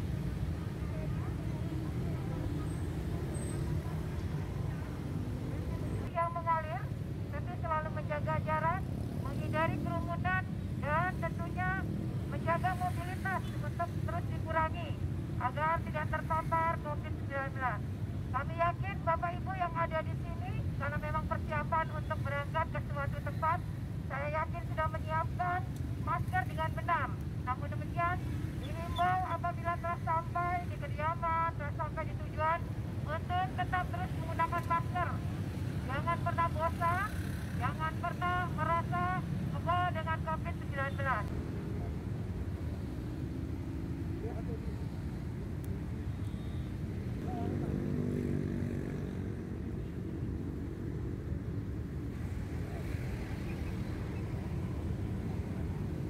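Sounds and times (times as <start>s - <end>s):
road traffic rumble: 0.0s - 56.0s
woman speaking through megaphone: 0.5s - 41.4s.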